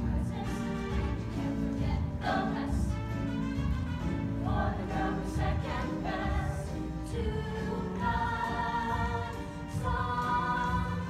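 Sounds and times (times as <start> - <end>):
chorus singing: 0.0 - 11.0
instrumental accompaniment with bass: 0.0 - 11.0.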